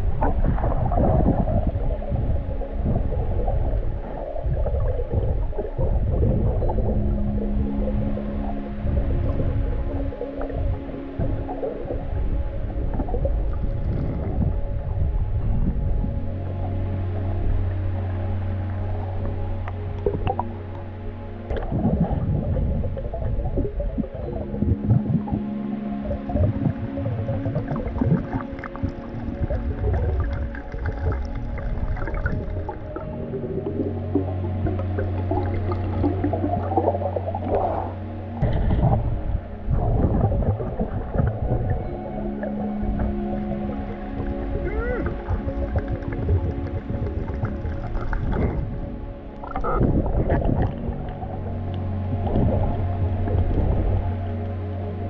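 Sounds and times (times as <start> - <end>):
music with low held notes: 0.0 - 55.0.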